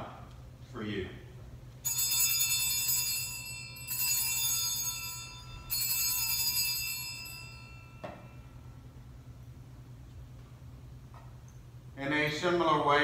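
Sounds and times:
altar bells ringing: 1.8s - 9.6s.

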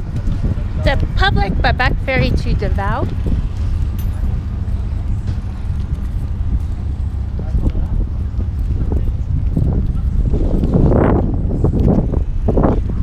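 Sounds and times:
ferry engine drone: 0.0s - 13.0s
wind noise on microphone: 0.0s - 13.0s.

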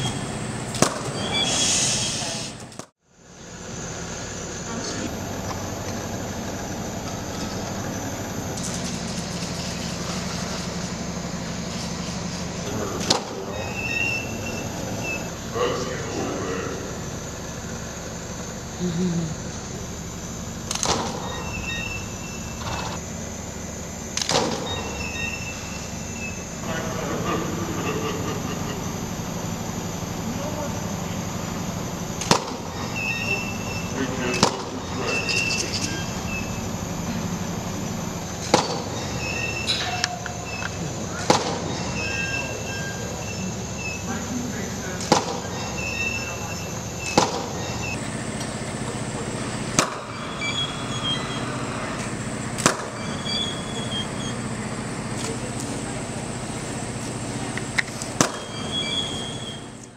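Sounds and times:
steady hum: 0.0s - 59.9s
faint voices: 12.5s - 20.3s, 26.6s - 32.1s, 32.8s - 38.4s, 39.7s - 59.9s
photo strobes firing with clicks: 20.6s - 21.2s.

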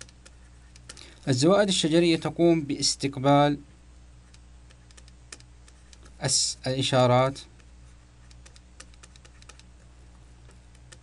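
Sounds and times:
stylus clicking on pen tablet: 0.0s - 1.1s, 4.3s - 6.2s, 7.6s - 9.8s, 10.4s - 11.0s
low steady hum: 0.0s - 11.0s.

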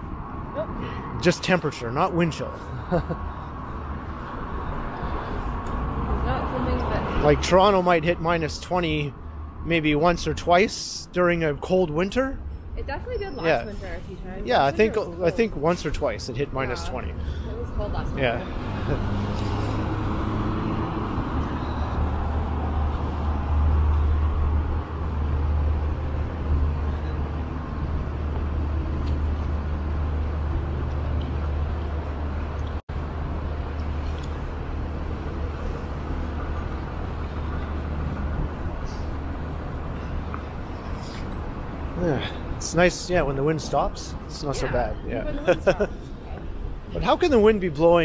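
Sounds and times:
street traffic: 0.0s - 48.0s.

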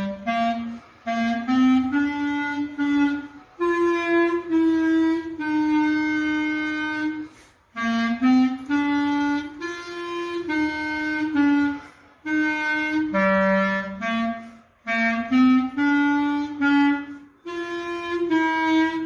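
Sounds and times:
clarinet and saxophone march duet: 0.0s - 19.0s.

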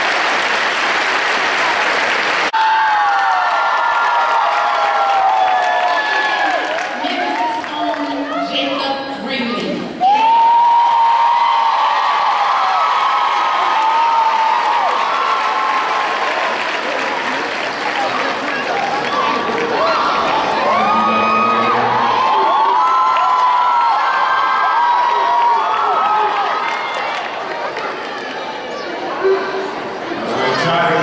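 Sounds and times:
audience applauding: 0.0s - 8.4s, 10.1s - 29.2s
crowd cheering and whooping: 1.6s - 8.5s, 10.0s - 30.5s.

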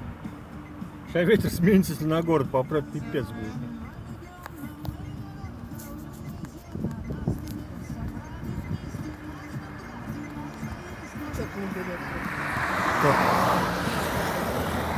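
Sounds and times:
car approaching: 0.0s - 14.9s.

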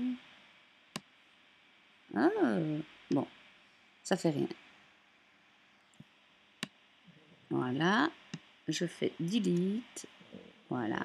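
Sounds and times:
woman saying ah: 2.1s - 3.2s, 8.7s - 10.0s, 10.7s - 11.0s.

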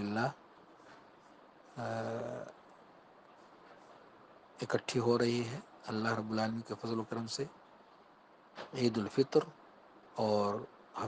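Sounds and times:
man humming low note: 1.8s - 2.5s.

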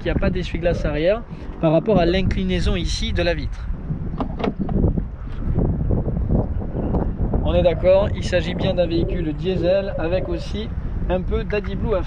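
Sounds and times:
wind buffeting microphone: 0.0s - 12.0s
fuel filler flap clicks: 4.2s - 4.8s.

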